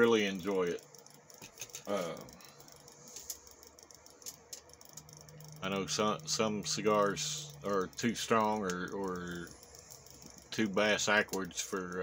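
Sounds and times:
faint clicks: 0:00.4 - 0:12.0.

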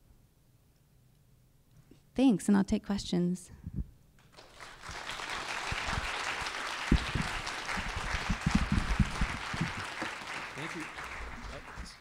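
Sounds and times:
audience applauding: 0:04.3 - 0:12.0
low thumps: 0:06.9 - 0:09.8.

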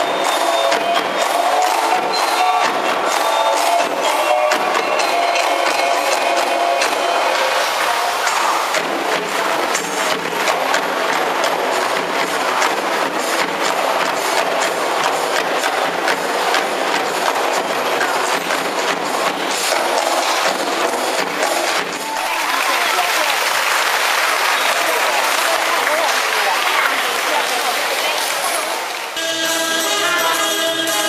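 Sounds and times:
fast drumming: 0:00.0 - 0:28.7.

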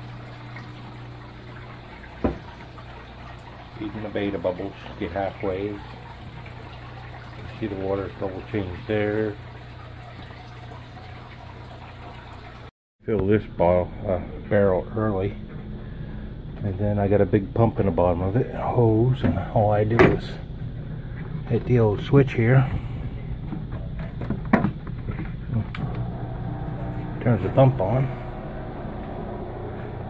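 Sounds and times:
water trickling: 0:00.0 - 0:12.7
low hum of aquarium pump: 0:00.0 - 0:30.0.

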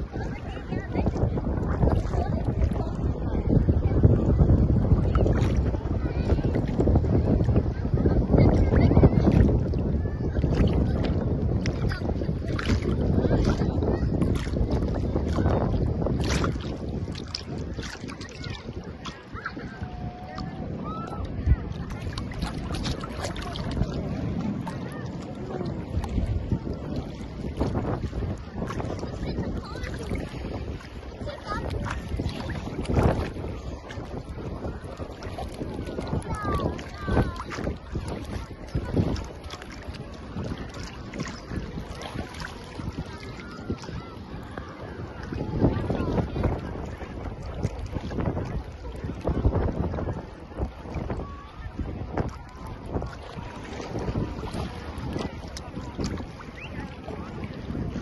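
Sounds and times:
sea water splashing and lapping: 0:00.0 - 0:58.0
wind buffeting microphone: 0:00.0 - 0:58.0.

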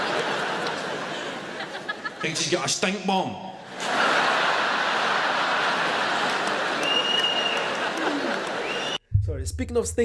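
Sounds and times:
audience applauding and laughing: 0:00.0 - 0:02.6, 0:03.6 - 0:09.0.

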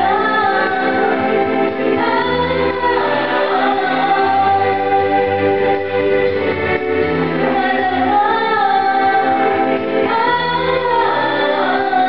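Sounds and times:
woman singing into microphone: 0:00.0 - 0:05.6, 0:07.4 - 0:12.0
instrumental accompaniment with bass line: 0:00.0 - 0:12.0.

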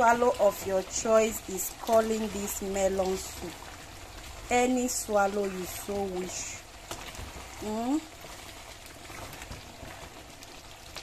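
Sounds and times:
thick soup bubbling in pot: 0:00.0 - 0:11.0.

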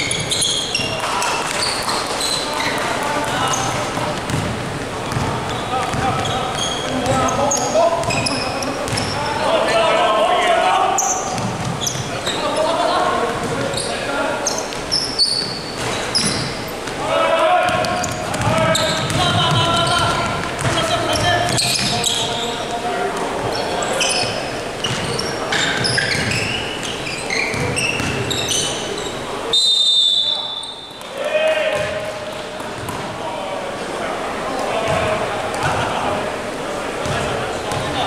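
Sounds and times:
sneakers squeaking: 0:00.0 - 0:33.2, 0:34.8 - 0:35.9, 0:37.0 - 0:38.0
players calling out: 0:00.0 - 0:38.0
basketball bouncing: 0:02.7 - 0:07.4, 0:08.0 - 0:09.2, 0:11.3 - 0:12.1, 0:17.7 - 0:22.2, 0:27.5 - 0:28.3, 0:31.7 - 0:33.1, 0:34.8 - 0:35.8, 0:37.0 - 0:38.0.

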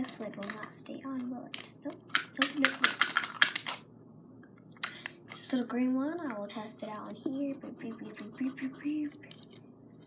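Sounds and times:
plastic cap clicking: 0:01.5 - 0:03.8.

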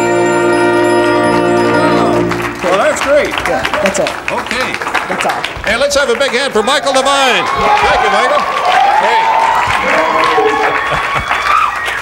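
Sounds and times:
sustained bell-like musical chord: 0:00.0 - 0:03.0.

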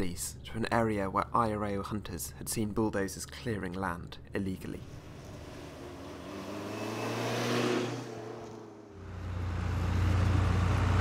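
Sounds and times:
truck driving on gravel: 0:08.4 - 0:11.0
bulldozer diesel engine humming: 0:08.9 - 0:11.0.

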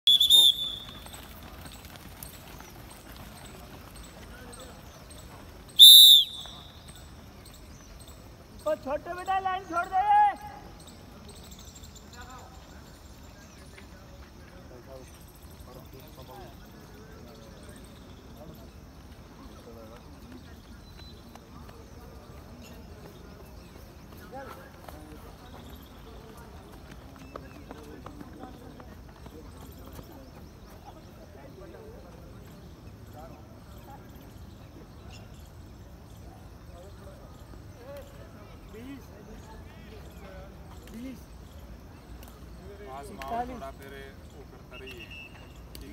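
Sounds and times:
sports whistle blast: 0:00.0 - 0:01.0, 0:05.8 - 0:06.8
runners' footsteps on track: 0:00.0 - 0:09.9, 0:10.6 - 0:45.9.

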